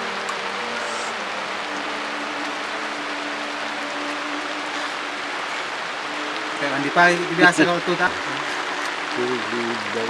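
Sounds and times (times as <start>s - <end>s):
rain on a tarp: 0.0s - 10.0s.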